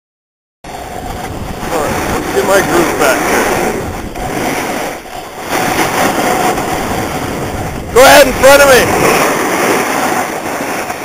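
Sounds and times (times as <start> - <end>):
rushing wind noise: 0.6 - 11.0.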